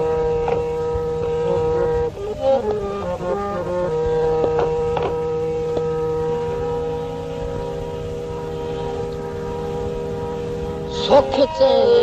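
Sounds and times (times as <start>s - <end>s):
harmonium sustained chord: 0.0s - 12.0s
faint taps: 3.9s - 6.0s.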